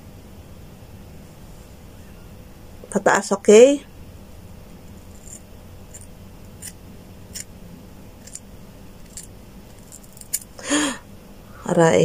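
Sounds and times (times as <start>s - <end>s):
scissors snipping hair: 8.2s - 8.4s, 9.0s - 10.5s.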